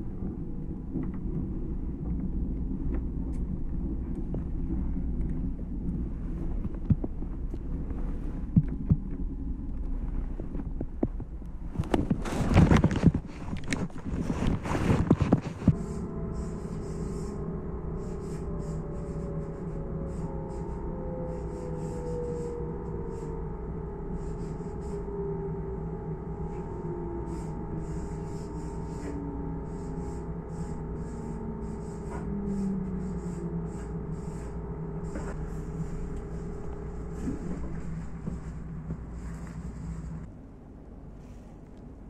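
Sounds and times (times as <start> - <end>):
train rumble: 0.0 - 42.0
train motor whine: 15.0 - 40.3.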